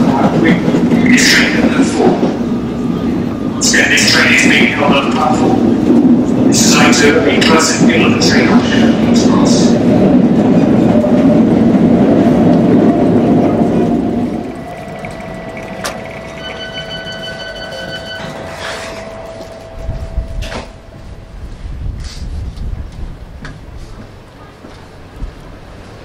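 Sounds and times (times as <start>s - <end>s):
train running: 0.0s - 26.0s
high tone: 14.4s - 21.7s.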